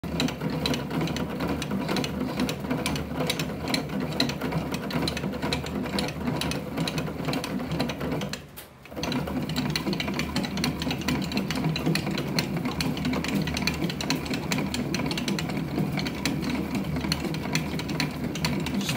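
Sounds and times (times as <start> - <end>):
fast mechanical clicking: 0.0 - 18.9
bat rolling machine whirring: 8.9 - 18.9.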